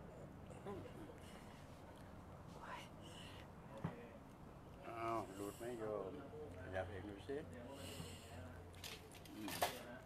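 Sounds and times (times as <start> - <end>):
person whispering: 2.6 - 3.0.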